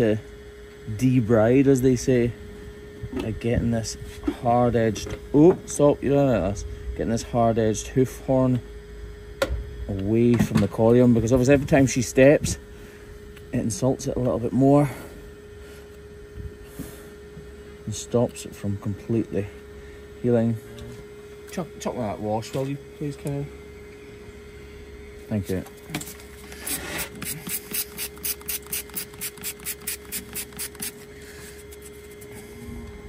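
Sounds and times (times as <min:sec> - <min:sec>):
steady hum: 0:00.0 - 0:33.0
scrubber rubbing a hoof: 0:26.5 - 0:32.3.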